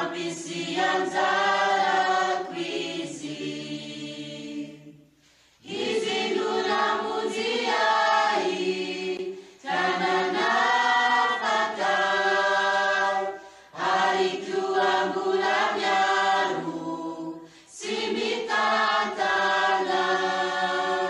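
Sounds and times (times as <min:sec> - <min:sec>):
mixed choir singing a hymn: 0:00.0 - 0:21.0.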